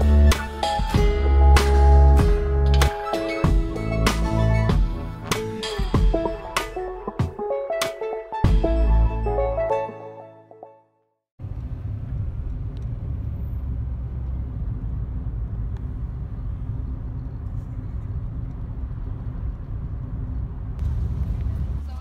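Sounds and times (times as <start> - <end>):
car road noise rumble: 11.4 - 22.0.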